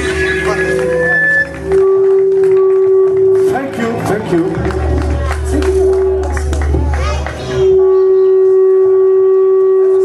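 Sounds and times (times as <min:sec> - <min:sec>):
high feedback tone: 0:00.0 - 0:04.8, 0:05.4 - 0:06.9, 0:07.5 - 0:10.0.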